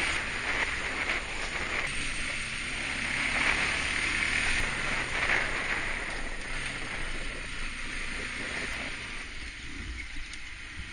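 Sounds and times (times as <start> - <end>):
low road noise rumble: 0.0 - 10.9
wind on microphone: 0.0 - 10.9.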